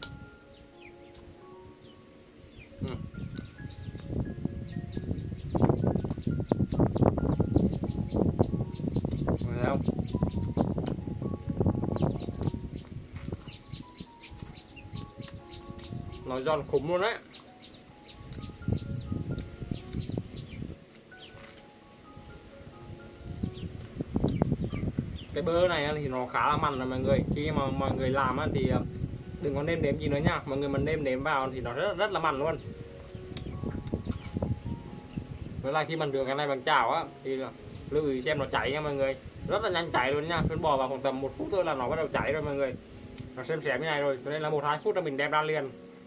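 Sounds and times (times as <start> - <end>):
soft background music: 0.0 - 46.0.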